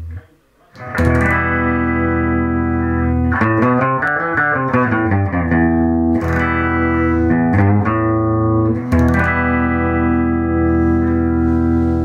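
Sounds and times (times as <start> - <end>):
fuzzy electric guitar notes: 0.0 - 12.0.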